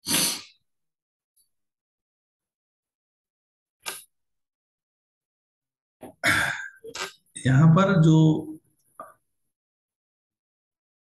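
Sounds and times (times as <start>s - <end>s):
man sighing: 6.2s - 6.8s.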